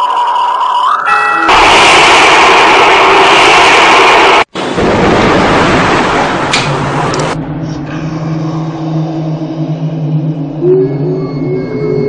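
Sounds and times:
low steady drone: 0:05.8 - 0:12.0
wavering high tone sliding in pitch: 0:07.6 - 0:12.0.

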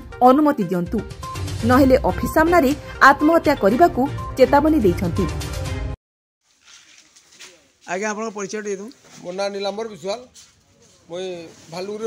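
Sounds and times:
man speaking into microphone: 0:11.1 - 0:12.0.

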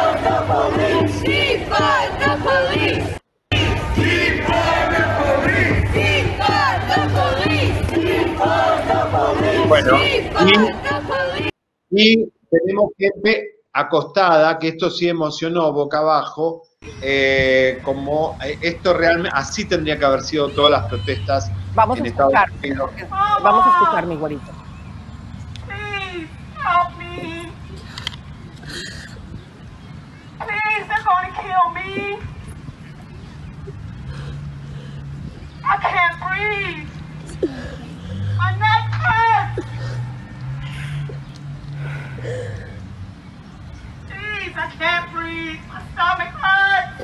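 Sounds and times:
crowd and outdoor background: 0:00.0 - 0:47.0.

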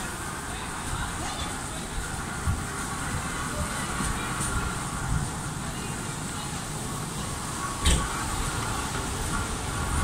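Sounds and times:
moving walkway hum and rumble: 0:00.0 - 0:10.0.

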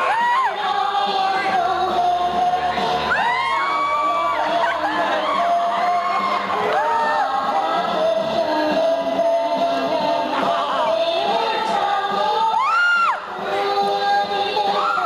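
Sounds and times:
audience cheering and whooping: 0:00.0 - 0:00.6, 0:03.1 - 0:07.8, 0:12.4 - 0:13.3
loud live stage music: 0:00.0 - 0:15.0.

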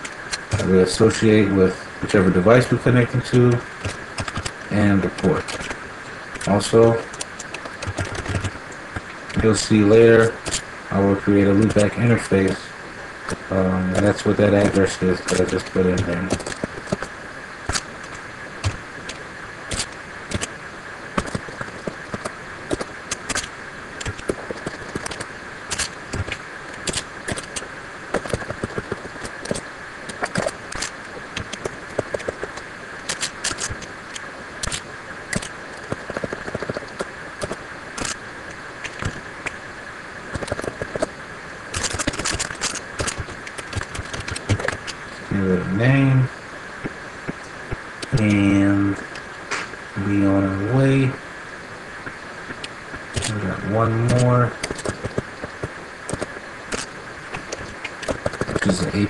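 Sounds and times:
faint steady high hum: 0:00.0 - 0:59.0
computer keyboard typing: 0:03.8 - 0:04.6, 0:06.4 - 0:08.6.

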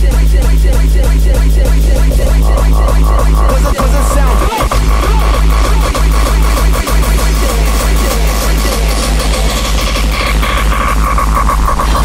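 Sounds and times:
hardcore electronic music: 0:00.0 - 0:12.0.

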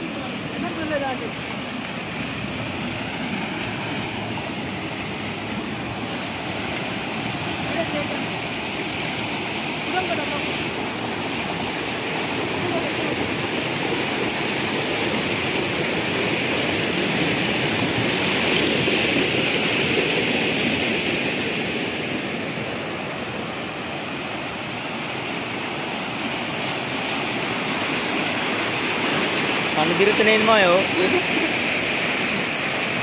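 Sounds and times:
water rushing through channel: 0:00.0 - 0:33.0.

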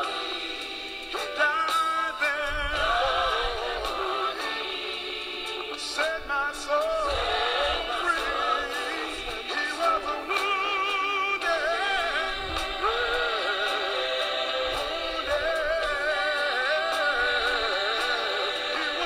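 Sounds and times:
gospel singing with instruments: 0:00.0 - 0:19.0.

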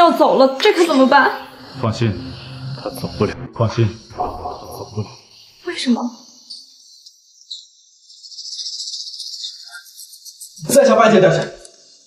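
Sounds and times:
high-pitched pulsing hiss: 0:00.0 - 0:10.5.

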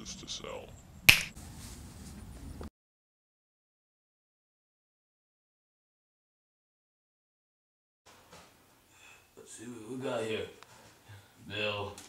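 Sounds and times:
faint outdoor background noise: 0:00.0 - 0:02.7
finger snap: 0:01.1 - 0:01.3.

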